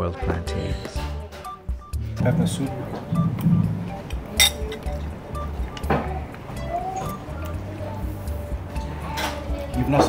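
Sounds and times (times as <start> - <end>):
background music: 0.0 - 10.0
spoon clinking on ceramic bowl: 4.3 - 5.1.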